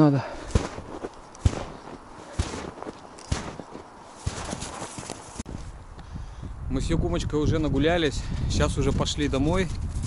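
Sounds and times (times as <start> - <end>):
footsteps crunching in snow: 0.4 - 5.8
low rustle: 0.5 - 6.0.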